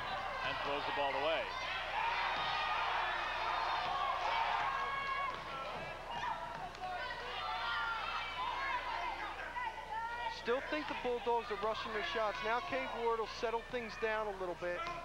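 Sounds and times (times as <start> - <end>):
crowd voices chattering: 0.0 - 15.0.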